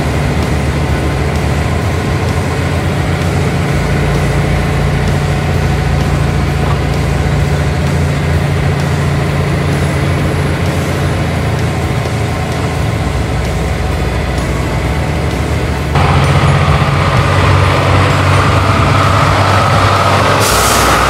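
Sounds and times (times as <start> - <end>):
road noise: 0.0 - 21.0
truck diesel engine running: 0.0 - 21.0.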